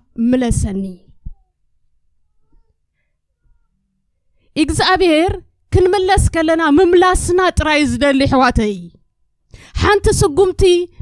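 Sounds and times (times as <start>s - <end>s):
woman's amplified voice: 0.0s - 1.2s, 4.6s - 9.0s, 9.7s - 11.0s.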